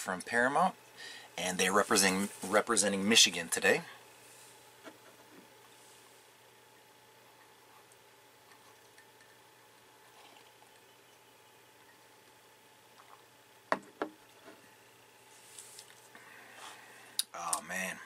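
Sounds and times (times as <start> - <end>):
mug knocking on hard surface: 13.7 - 14.2.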